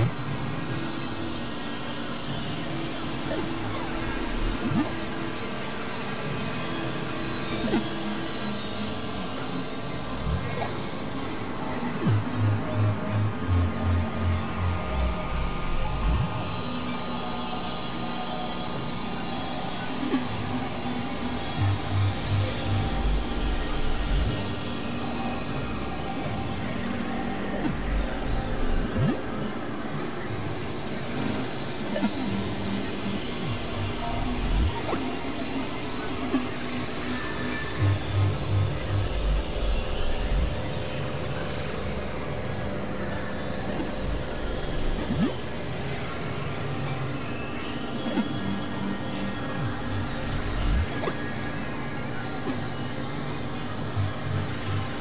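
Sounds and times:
sustained synthesizer drone: 0:00.0 - 0:55.0.

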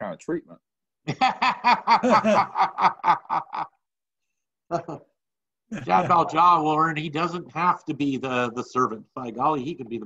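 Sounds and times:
person laughing: 0:01.1 - 0:03.8, 0:04.7 - 0:05.1.

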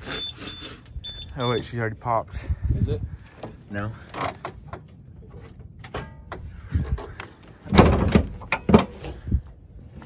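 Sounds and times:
car hood clunk and rattle: 0:07.7 - 0:09.2.

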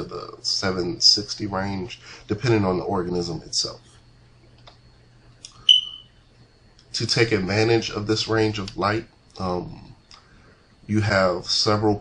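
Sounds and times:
faint steady hum: 0:00.0 - 0:12.0
high-pitched electronic beep: 0:05.7 - 0:06.2.

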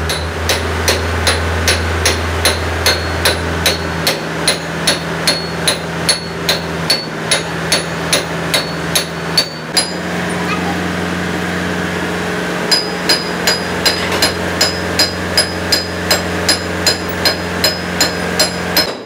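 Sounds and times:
hammer striking metal with ring: 0:00.0 - 0:10.1, 0:12.7 - 0:19.0.

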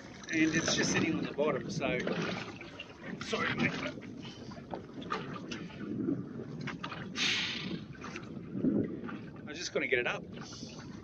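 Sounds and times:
water lapping against boat hull: 0:00.0 - 0:11.0
wind on microphone: 0:00.0 - 0:11.0.

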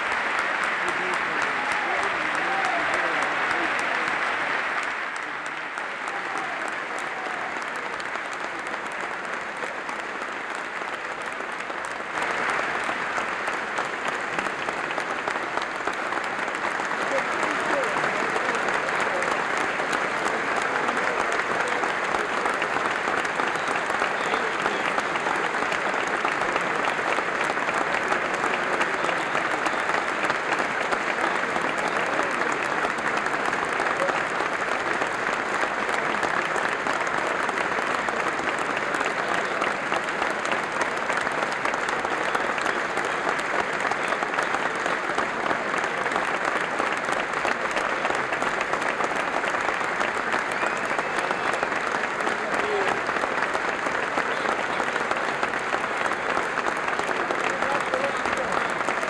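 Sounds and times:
audience applause: 0:00.0 - 0:59.0
cheering voices: 0:00.0 - 0:59.0.

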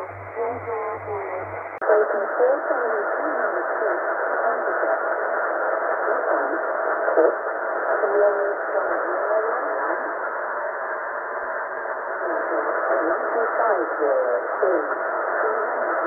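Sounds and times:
weak radio announcer voice: 0:00.0 - 0:10.2, 0:12.2 - 0:16.0.

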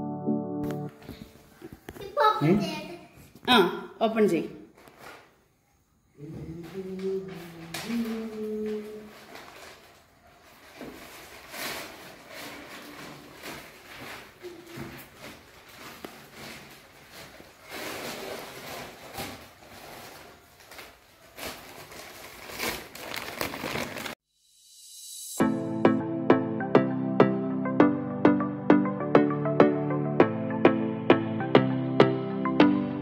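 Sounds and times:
wrapping paper crinkling: 0:07.2 - 0:24.2.

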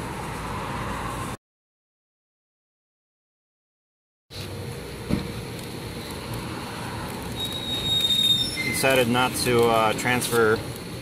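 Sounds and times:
road traffic: 0:00.0 - 0:01.4, 0:04.3 - 0:11.0
faint thin whistle: 0:07.4 - 0:08.8.

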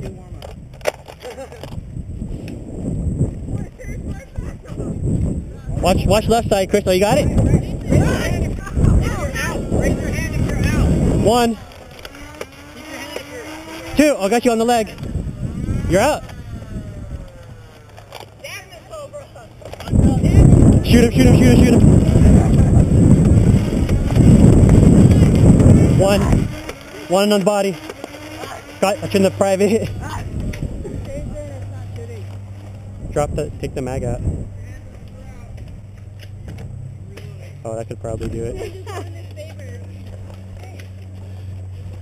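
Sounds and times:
wind rumbling on microphone: 0:01.5 - 0:42.0.

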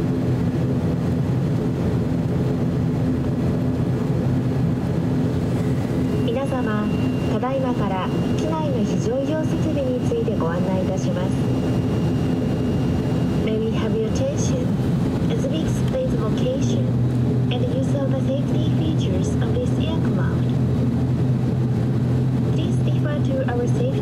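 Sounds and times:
turboprop engine idling: 0:00.0 - 0:24.0.

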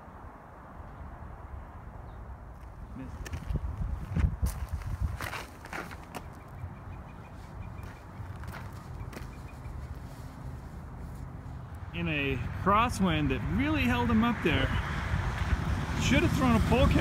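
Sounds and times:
wind rumble on microphone: 0:00.0 - 0:07.8, 0:12.5 - 0:17.0
footsteps on dirt: 0:02.6 - 0:11.5.

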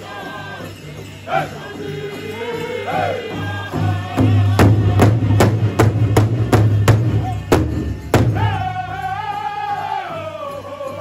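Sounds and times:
people singing: 0:00.0 - 0:07.5, 0:08.1 - 0:11.0
large drum beaten steadily: 0:01.1 - 0:09.3.

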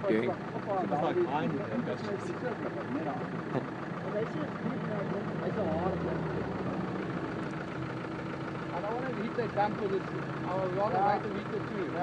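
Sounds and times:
car engine idling: 0:00.0 - 0:12.0.

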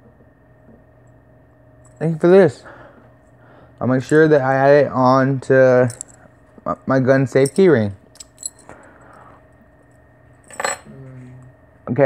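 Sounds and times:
keys jingling on keyring: 0:05.8 - 0:06.3, 0:07.3 - 0:09.2.

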